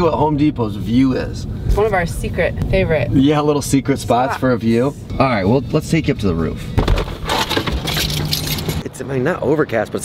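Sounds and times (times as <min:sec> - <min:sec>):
thump: 0:06.8 - 0:07.8
keys jangling: 0:07.6 - 0:08.8.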